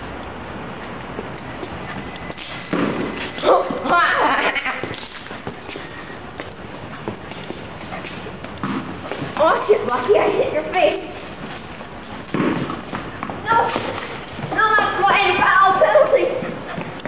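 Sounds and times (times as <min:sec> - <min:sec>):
voices calling out: 0:00.0 - 0:17.0.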